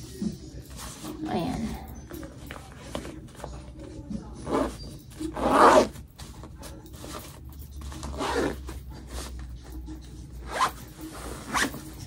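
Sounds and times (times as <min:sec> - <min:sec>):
zipper being pulled shut: 0:05.4 - 0:05.9, 0:08.0 - 0:08.7, 0:10.5 - 0:11.8.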